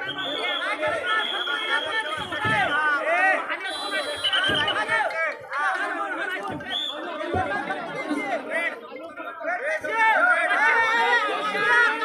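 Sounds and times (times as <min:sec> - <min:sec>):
men talking over one another: 0:00.0 - 0:12.0.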